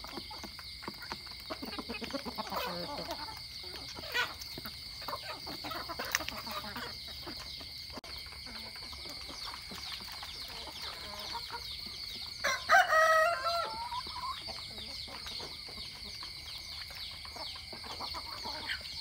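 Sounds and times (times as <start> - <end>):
rooster crowing: 12.4 - 14.1.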